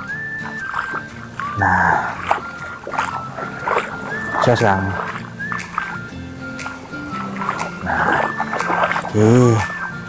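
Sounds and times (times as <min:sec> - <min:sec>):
background music melody: 0:00.0 - 0:10.0
small waves lapping on shore: 0:00.0 - 0:10.0.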